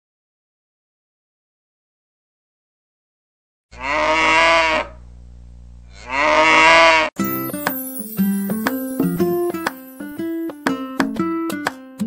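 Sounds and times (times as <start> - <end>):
cow mooing: 3.7 - 4.9, 5.9 - 7.1
keyboard and plucked strings music: 7.2 - 12.0.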